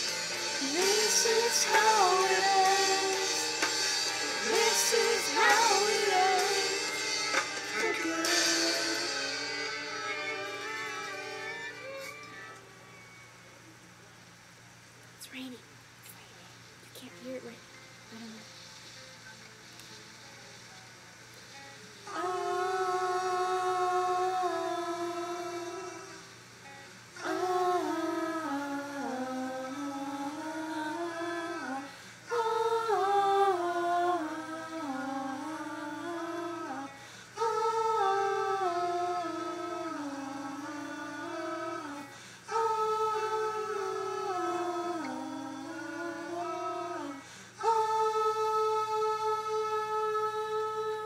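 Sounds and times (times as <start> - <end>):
woman humming slow melody: 18.0 - 18.6, 22.1 - 26.3, 27.2 - 51.0.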